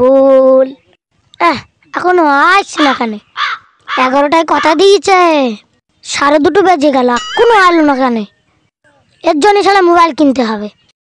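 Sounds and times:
boy talking: 0.0 - 10.9.

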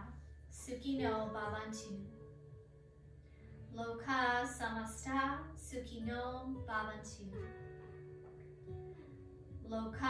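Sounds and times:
woman singing a slow chant: 0.0 - 2.4
soft plucked guitar music: 0.0 - 10.0.

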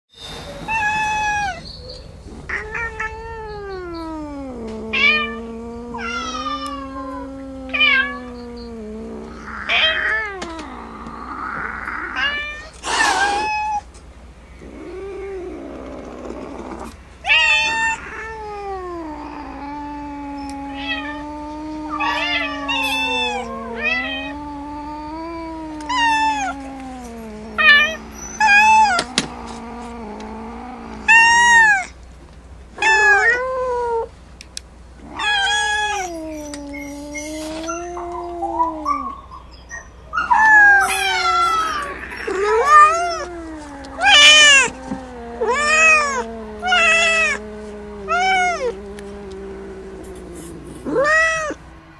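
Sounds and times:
kittens meowing: 0.6 - 14.0, 14.6 - 32.0, 32.8 - 34.1, 35.0 - 51.9
low wavering cat cry: 2.4 - 13.9, 14.6 - 32.0, 32.8 - 34.1, 35.0 - 51.9.

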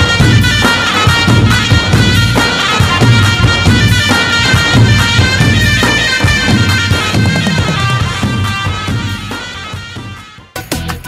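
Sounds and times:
clarinets playing melody: 0.0 - 11.0
steady drum beat: 0.0 - 11.0.

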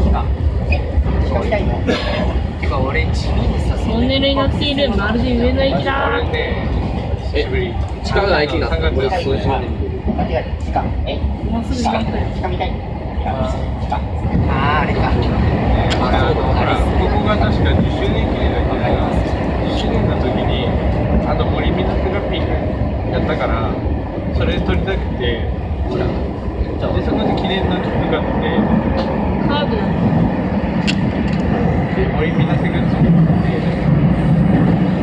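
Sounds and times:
passengers talking: 0.0 - 35.0
train wheels rumbling on rail: 0.0 - 35.0.

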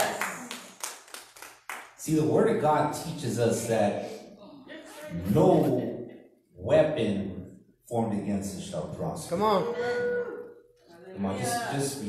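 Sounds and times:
people clapping: 0.0 - 2.1.

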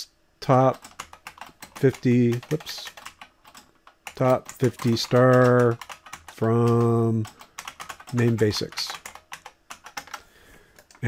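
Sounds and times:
computer keyboard typing: 0.5 - 11.0.

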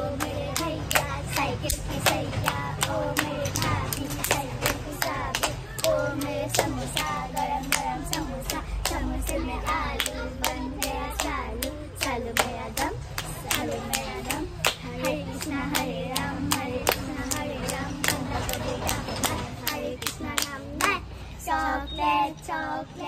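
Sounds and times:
quick hand claps: 0.0 - 21.0
girls chanting a rhyme: 0.0 - 23.0.

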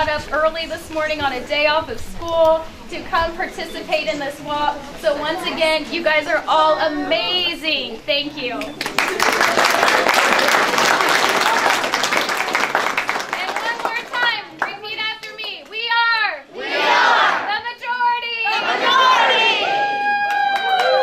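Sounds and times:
crowd clapping and cheering: 8.6 - 15.8, 18.6 - 21.0
group of voices calling out: 16.5 - 17.5, 18.4 - 20.1.

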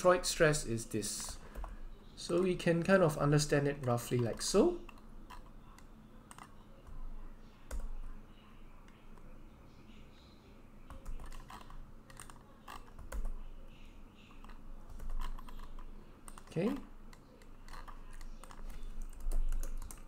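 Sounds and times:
computer keys clicking: 3.8 - 7.0, 10.9 - 13.4, 14.3 - 20.0.

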